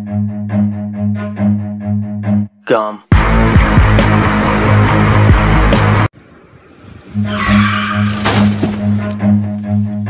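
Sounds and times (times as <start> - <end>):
music: 0.0 - 6.1, 7.1 - 10.0
car tyres squealing: 7.1 - 9.2.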